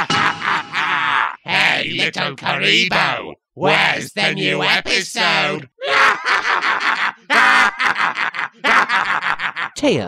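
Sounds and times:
man's cartoon villain laughter: 0.0s - 1.4s, 5.8s - 9.8s.

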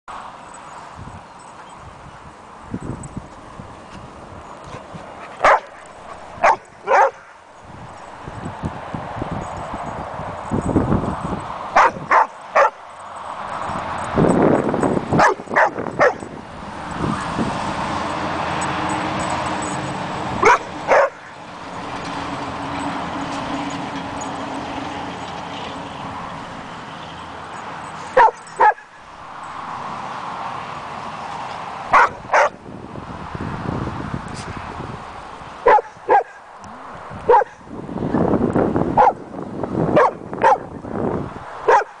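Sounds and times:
dog barking: 5.4s - 5.8s, 6.4s - 7.4s, 11.8s - 12.8s, 15.2s - 16.3s, 20.4s - 21.3s, 28.2s - 28.9s, 31.9s - 32.6s, 35.6s - 36.4s, 37.3s - 37.6s, 39.0s - 39.2s, 40.0s - 40.7s, 41.7s - 42.0s.

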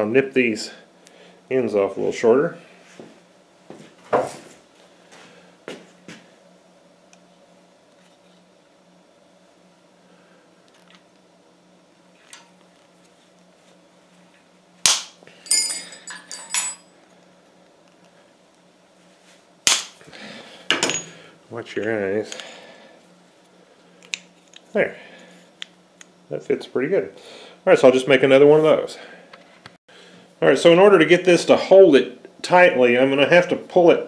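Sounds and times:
wire cutters snapping wire: 14.8s - 15.2s.

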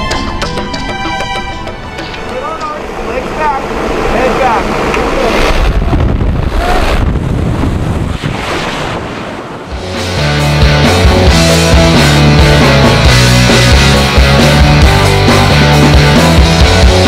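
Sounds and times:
wind buffeting microphone: 2.8s - 9.7s.

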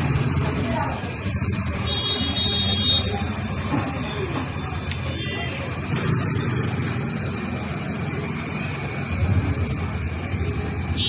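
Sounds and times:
motorcycle engines running: 0.0s - 11.0s
street din: 0.0s - 11.0s.

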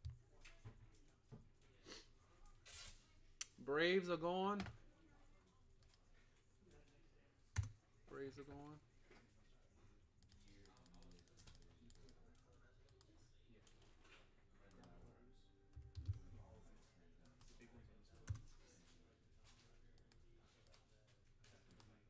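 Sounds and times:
computer keyboard typing: 7.5s - 7.8s, 10.2s - 13.1s, 15.8s - 16.4s, 18.1s - 18.5s.

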